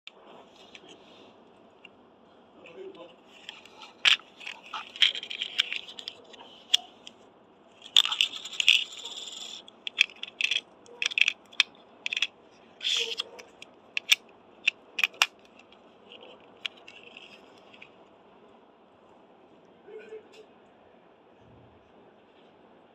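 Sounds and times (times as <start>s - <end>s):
plastic discs rattling: 3.3s - 6.9s, 7.8s - 17.9s
toy disc shooter clicking: 7.9s - 13.4s.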